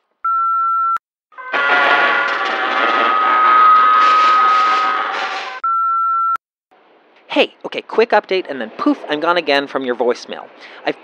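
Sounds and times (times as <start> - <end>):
voicemail beeps: 0.2 - 1.0, 3.0 - 4.9, 5.6 - 6.4
loud distorted noise with tone: 1.4 - 5.6.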